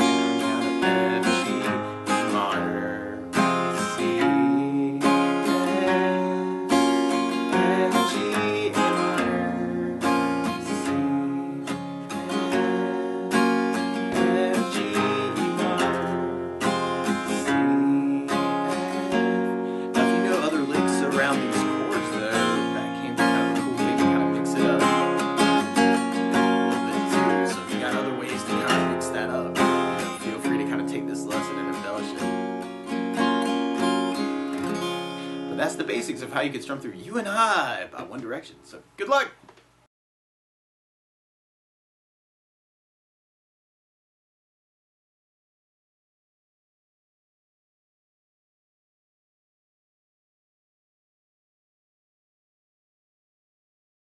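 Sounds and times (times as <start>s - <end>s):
acoustic guitar strumming: 0.0s - 39.4s.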